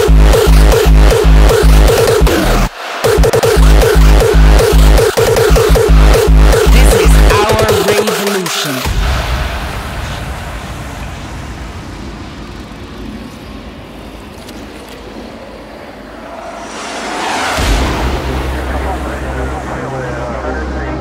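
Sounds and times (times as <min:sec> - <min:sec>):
deep held bass note: 0:05.8 - 0:07.5
rising noise sweep: 0:08.8 - 0:21.0
low rumbling atmosphere: 0:08.9 - 0:21.0.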